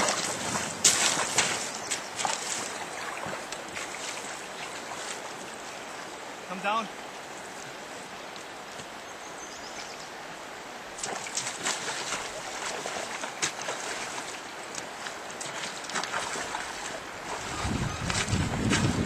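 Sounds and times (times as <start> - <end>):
river current rushing: 0.0 - 9.4, 10.0 - 19.0.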